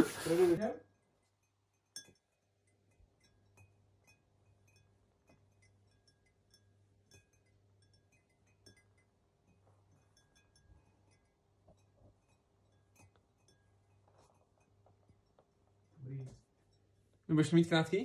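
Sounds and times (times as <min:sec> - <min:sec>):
faint taps and ringing glasses: 0:00.2 - 0:18.0
clink on water-filled glass: 0:01.4 - 0:09.2, 0:10.0 - 0:11.4, 0:12.6 - 0:14.0.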